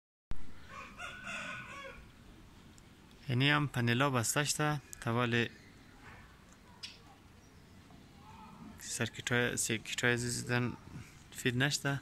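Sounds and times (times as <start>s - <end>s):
pitched animal call: 8.2s - 8.8s.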